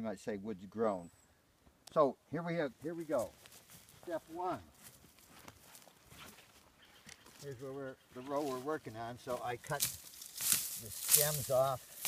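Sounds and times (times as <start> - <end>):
faint footsteps on dry ground: 2.6 - 12.0.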